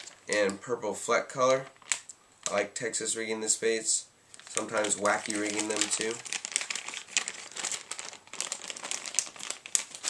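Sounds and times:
plastic packaging crinkling: 0.0 - 0.7, 1.7 - 2.6, 4.3 - 10.0.

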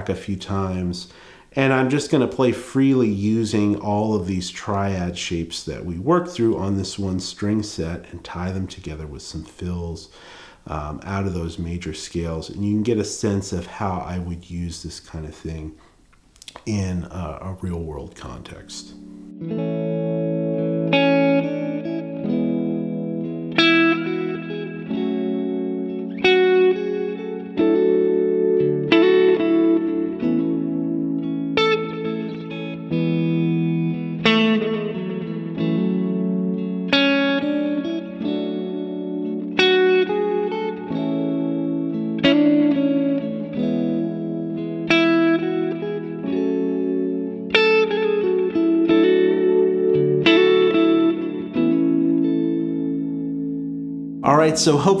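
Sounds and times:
electric guitar playing: 0.0 - 14.7, 16.5 - 55.0
backing track chords: 18.6 - 55.0.

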